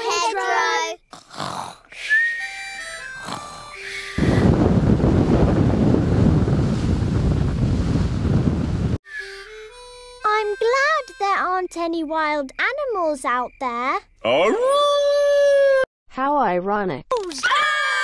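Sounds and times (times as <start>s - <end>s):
cartoon pretend snoring: 1.1s - 1.9s, 3.1s - 3.9s.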